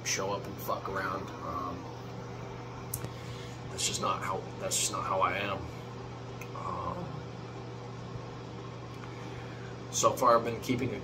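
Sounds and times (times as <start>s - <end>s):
fan running with hum and hiss: 0.0s - 11.0s.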